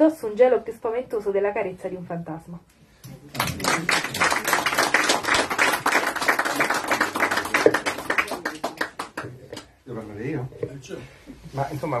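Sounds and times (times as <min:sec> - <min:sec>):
audience applauding: 0:03.4 - 0:09.3.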